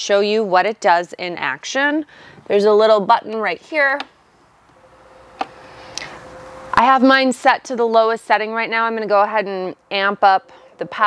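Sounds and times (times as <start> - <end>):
electric blower fan hum: 4.6 - 7.4.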